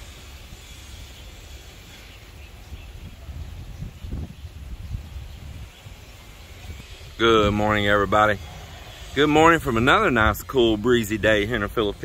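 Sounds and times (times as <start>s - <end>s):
faint outdoor background sound: 0.0s - 12.0s
wind buffeting microphone: 2.6s - 12.0s.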